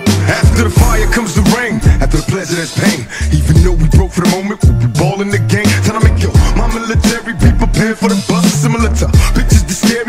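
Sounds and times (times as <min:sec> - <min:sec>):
rapping over a heavy bass beat: 0:00.0 - 0:10.0.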